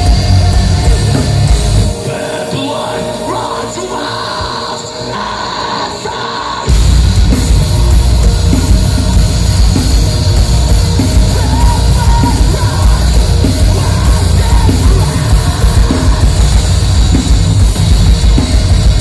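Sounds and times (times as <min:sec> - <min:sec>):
live metal band with vocals: 0:00.0 - 0:19.0.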